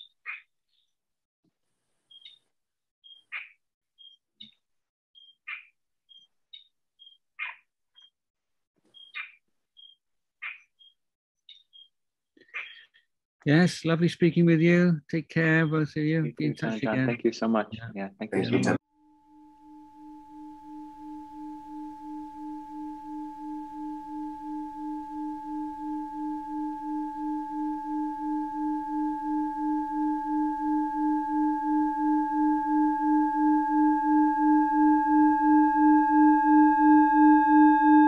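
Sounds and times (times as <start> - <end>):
sustained ringing tone: 18.4 - 38.0.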